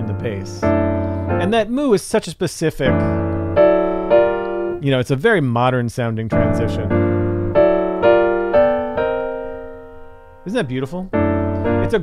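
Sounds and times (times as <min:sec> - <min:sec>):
piano chords: 0:00.0 - 0:02.0, 0:02.8 - 0:04.9, 0:06.3 - 0:12.0.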